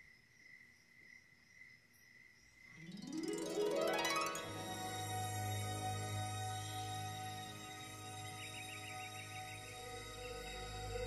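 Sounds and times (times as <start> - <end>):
high chirring night insects: 0.0 - 11.0
music with rising notes: 2.8 - 11.0.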